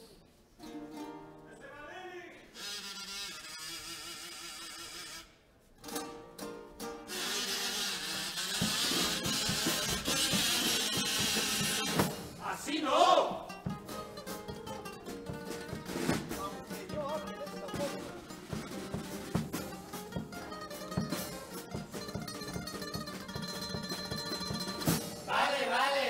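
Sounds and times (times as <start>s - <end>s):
acoustic guitar: 0.0s - 26.0s
drum strokes: 6.8s - 12.6s, 13.4s - 25.6s
men singing: 12.4s - 13.6s, 25.2s - 26.0s.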